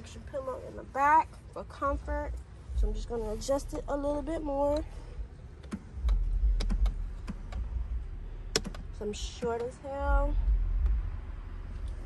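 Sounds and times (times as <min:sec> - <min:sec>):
steady low rumble: 0:00.0 - 0:12.0
light clicks of seat controls: 0:05.5 - 0:07.7, 0:08.5 - 0:10.0.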